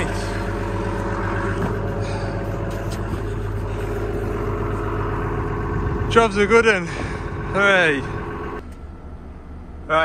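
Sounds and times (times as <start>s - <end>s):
excavator diesel engine running: 0.0s - 10.0s.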